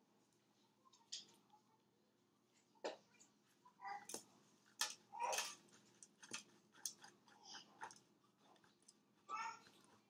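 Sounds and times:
tool scraping scratches and clicks: 4.7s - 9.0s.

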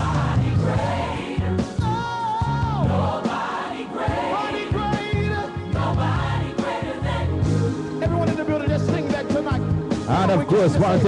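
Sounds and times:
band with steady bass line: 0.0s - 3.4s, 4.1s - 11.0s
choir singing: 0.0s - 8.0s.

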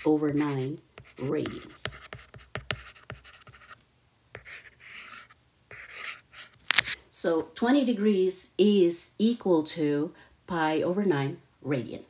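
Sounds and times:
stylus scratching on tablet screen: 0.0s - 3.8s, 4.4s - 7.0s.

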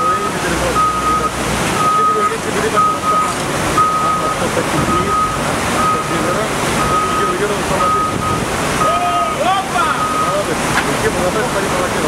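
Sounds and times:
truck reversing alarm beeping: 0.0s - 10.6s
river rushing: 0.0s - 12.0s
truck engine running: 0.0s - 12.0s.

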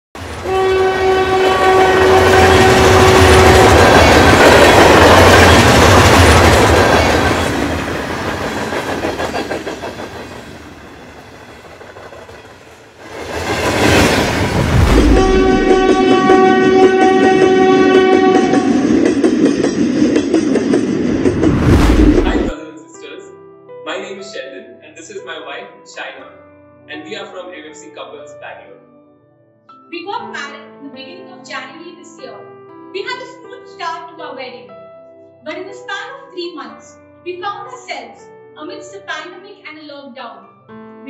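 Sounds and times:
train horn: 0.2s - 4.9s, 14.9s - 19.1s
train rumble and clatter: 1.2s - 22.6s
rushing whoosh: 13.0s - 16.2s, 20.8s - 22.5s.

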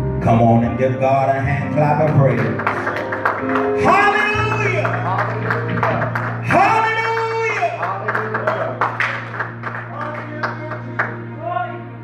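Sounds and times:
congregation clapping: 1.8s - 11.6s.

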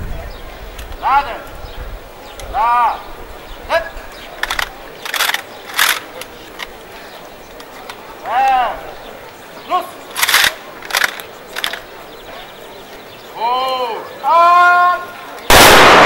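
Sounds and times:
sharp rattling noises: 3.7s - 8.8s, 9.8s - 12.2s.

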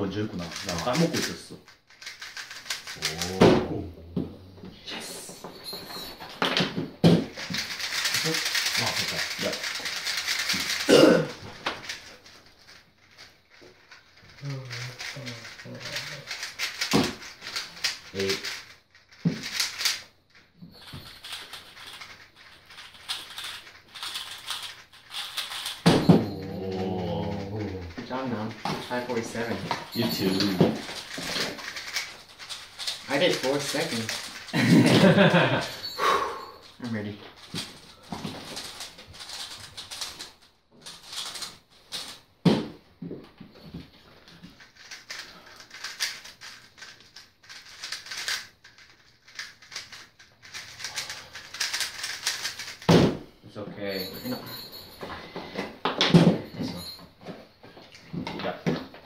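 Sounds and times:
plastic cube clacking rattle: 0.3s - 3.4s, 6.6s - 20.0s, 20.8s - 35.7s, 36.6s - 42.2s, 44.5s - 53.1s
voices: 26.1s - 30.8s.

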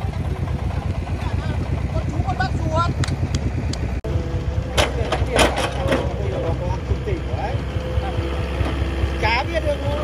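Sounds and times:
diesel engine chugging: 0.0s - 10.0s.

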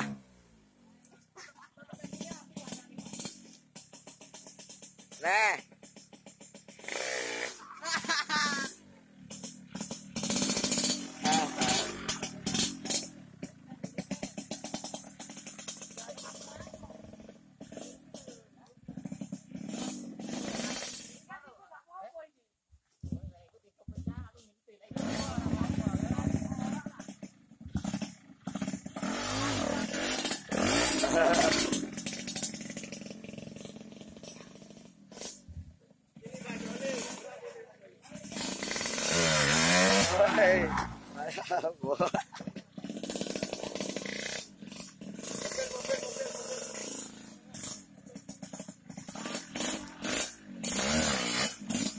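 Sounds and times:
motorcycle engine revving: 0.0s - 21.5s, 24.8s - 51.9s.

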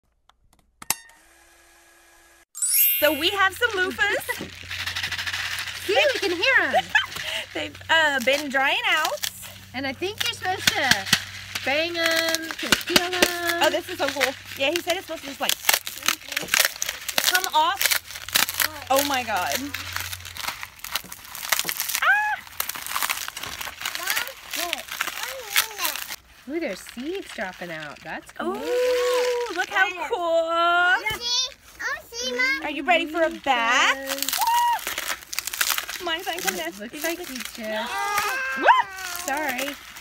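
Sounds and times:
dried gourd skin crackling: 3.0s - 40.0s.

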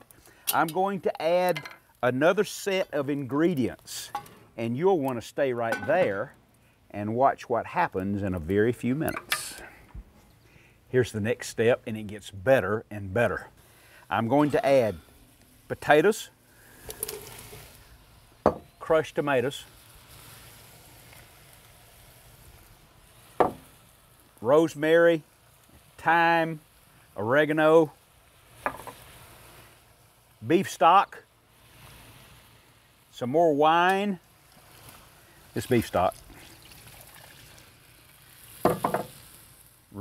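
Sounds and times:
tomatoes sizzling in pot: 0.0s - 40.0s.

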